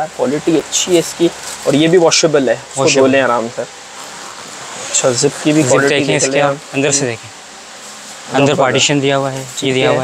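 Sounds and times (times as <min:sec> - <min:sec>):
steady background noise: 0:00.0 - 0:10.0
man speaking: 0:05.0 - 0:07.3, 0:08.3 - 0:10.0.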